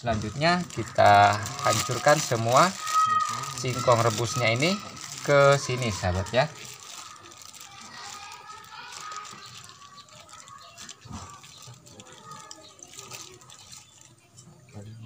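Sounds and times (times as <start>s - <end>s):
liquid dripping: 0.0s - 14.5s.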